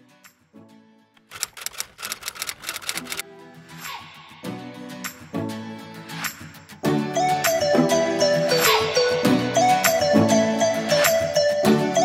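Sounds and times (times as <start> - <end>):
typewriter key clicks: 1.2 - 3.2.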